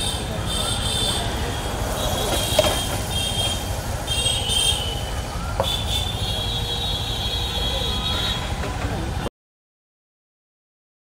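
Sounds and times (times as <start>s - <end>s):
low traffic rumble: 0.0s - 9.3s.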